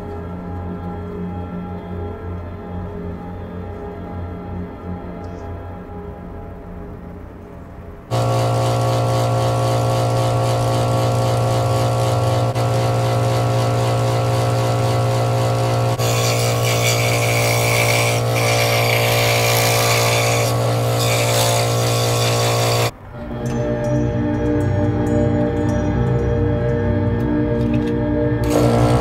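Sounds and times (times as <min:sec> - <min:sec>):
saw blade cutting thin wood: 0:08.1 - 0:22.9
scroll saw motor humming: 0:08.1 - 0:22.9, 0:28.4 - 0:29.0.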